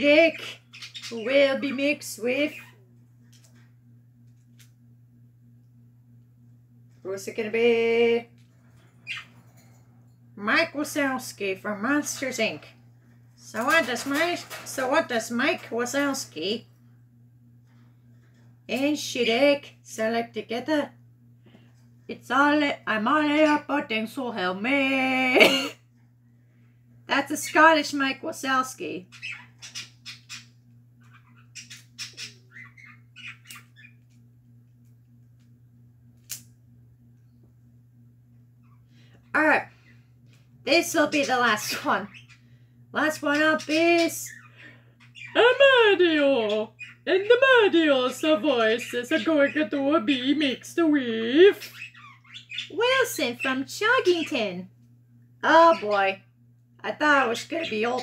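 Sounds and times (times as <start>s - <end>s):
faint low hum: 0.0s - 58.0s.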